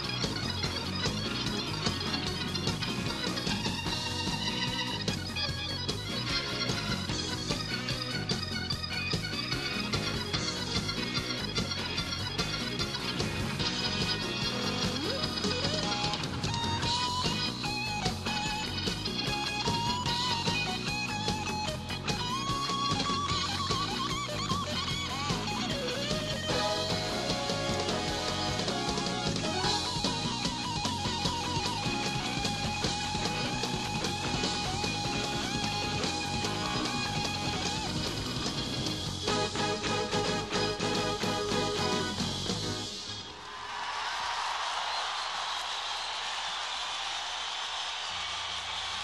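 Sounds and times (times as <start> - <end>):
bass guitar: 0.0 - 43.1
electric guitar lead: 0.0 - 43.2
drum kit: 0.0 - 43.4.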